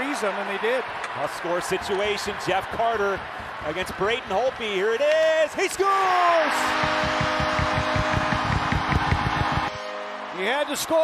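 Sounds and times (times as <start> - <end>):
crowd cheering: 0.0 - 11.0
arena goal horn: 6.5 - 10.9.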